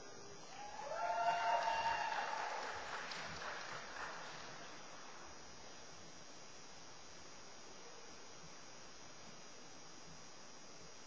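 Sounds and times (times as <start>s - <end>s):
person whooping: 0.5s - 2.8s
audience applause: 0.5s - 5.2s.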